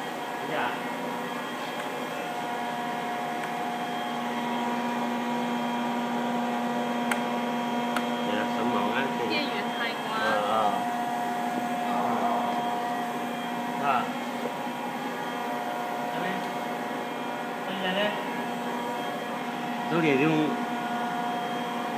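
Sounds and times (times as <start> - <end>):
steady machine tones: 8.2 - 21.9.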